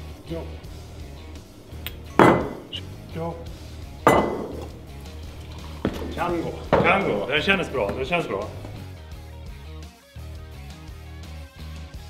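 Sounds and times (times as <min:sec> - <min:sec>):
background music: 0:00.0 - 0:12.0
sharp knocks with ring: 0:01.9 - 0:02.8, 0:04.0 - 0:04.8.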